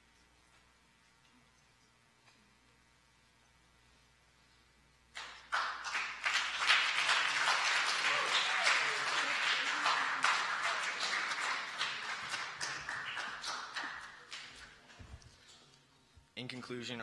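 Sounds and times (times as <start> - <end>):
audience applauding: 5.2 - 14.9.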